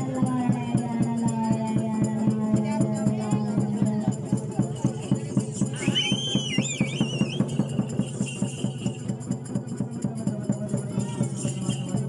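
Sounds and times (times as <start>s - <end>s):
folk drums and rattling percussion: 0.0s - 12.0s
high wavering whistle: 5.7s - 7.8s.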